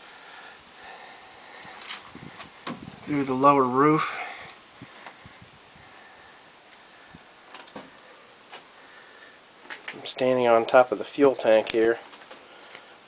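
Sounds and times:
faint background hiss: 0.0s - 13.0s.

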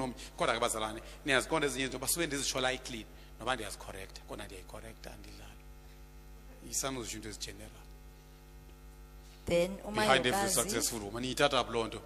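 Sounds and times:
electrical mains hum: 0.0s - 12.0s
man's voice: 10.0s - 11.1s.

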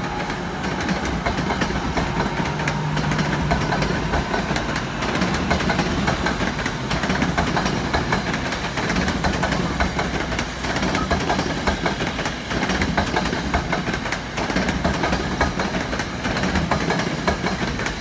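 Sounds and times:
train rumbling: 0.0s - 18.0s.

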